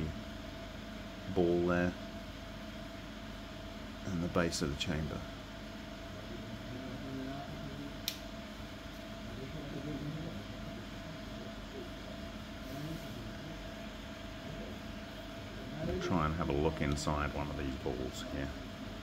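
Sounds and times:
steady hum with hiss: 0:00.0 - 0:19.0
sharp click: 0:08.0 - 0:08.3.

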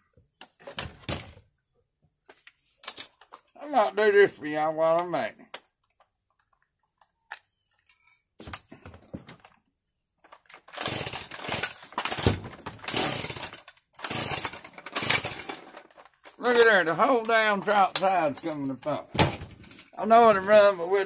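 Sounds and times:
gear rustling and clunking: 0:08.4 - 0:20.6.

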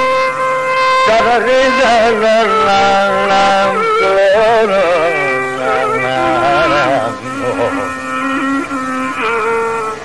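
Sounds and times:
steady drone: 0:00.0 - 0:10.0
man singing with ornaments: 0:00.8 - 0:09.6.

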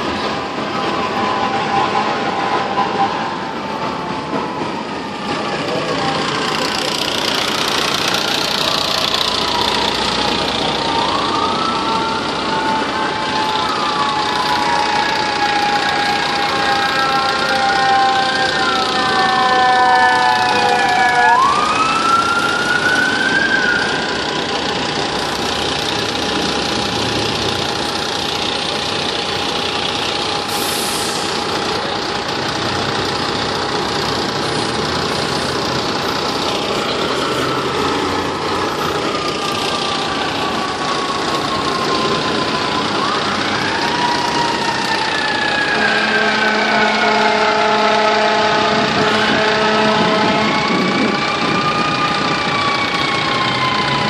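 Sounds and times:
fire truck siren wailing: 0:00.0 - 0:54.0
diesel engines idling: 0:03.4 - 0:54.0.

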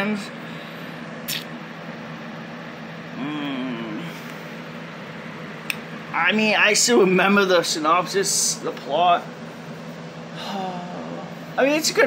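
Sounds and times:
low room hum: 0:00.0 - 0:12.0
person humming: 0:03.2 - 0:04.1, 0:10.4 - 0:11.3.

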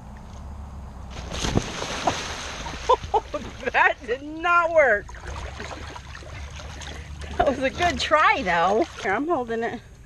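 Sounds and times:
low steady rumble: 0:00.0 - 0:10.0
pool water splashing: 0:01.1 - 0:09.8
dog paddling in water: 0:01.2 - 0:09.7.

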